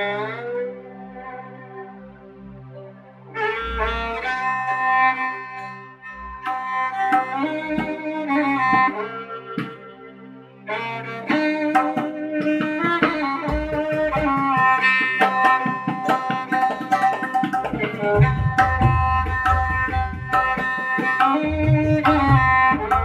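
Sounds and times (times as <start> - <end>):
violin melody: 0.0 - 23.0
tabla strokes: 6.4 - 9.8, 11.3 - 23.0.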